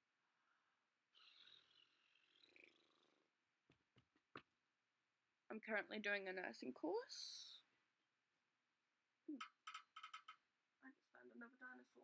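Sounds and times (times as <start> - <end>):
small clicks: 9.4 - 10.4.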